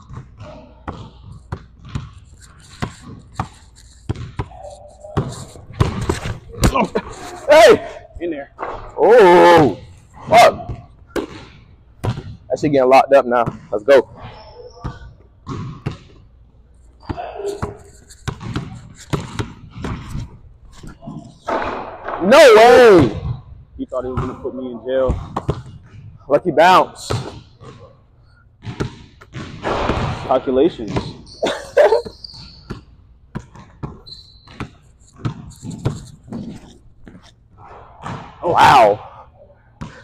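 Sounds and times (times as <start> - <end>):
basketball bouncing on hardwood floor: 0.1 - 2.2, 4.1 - 6.8, 17.1 - 20.1, 28.6 - 30.2, 32.7 - 37.2
person laughing: 6.5 - 7.9, 31.4 - 32.2
basketball bouncing on hardwood: 17.1 - 20.1, 28.6 - 30.2.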